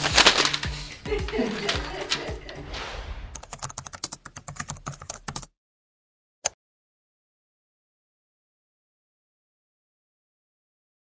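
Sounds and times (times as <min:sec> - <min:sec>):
rustling: 0:00.0 - 0:02.3
keyboard typing: 0:03.4 - 0:05.5.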